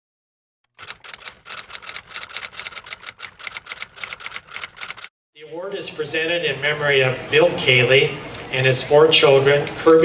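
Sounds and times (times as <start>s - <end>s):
typewriter keystrokes clacking: 0.7s - 5.1s.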